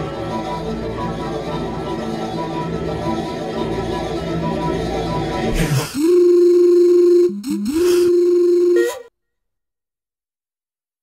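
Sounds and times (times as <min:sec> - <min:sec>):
steady electronic tone: 0:05.8 - 0:09.1.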